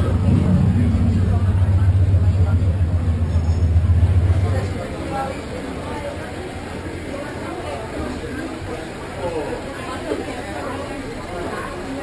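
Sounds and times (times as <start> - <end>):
vehicle engine rumbling: 0.0 - 7.9
crowd chatter: 0.0 - 12.0.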